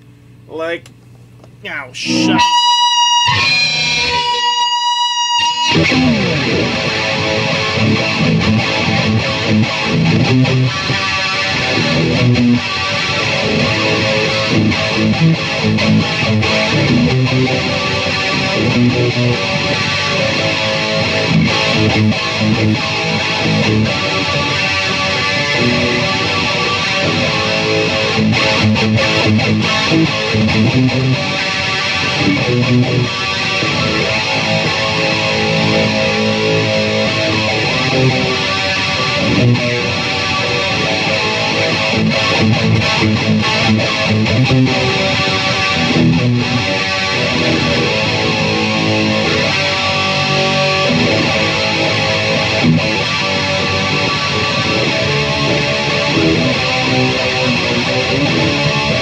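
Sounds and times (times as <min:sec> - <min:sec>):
distorted electric guitar riffing: 0:01.6 - 0:59.0.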